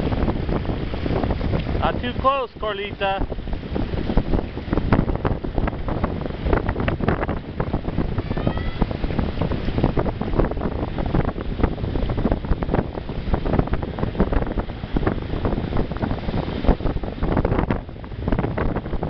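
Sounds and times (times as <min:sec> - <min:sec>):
ocean surf breaking on rocks: 0:00.0 - 0:19.0
wind buffeting microphone: 0:00.0 - 0:19.0.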